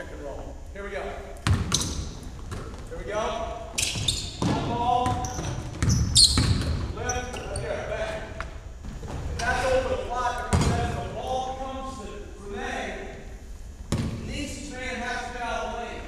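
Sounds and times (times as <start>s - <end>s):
voices talking in a gym: 0.0s - 16.0s
basketball bouncing on wooden floor: 1.4s - 2.9s, 3.8s - 6.9s, 10.5s - 10.9s, 13.9s - 14.2s.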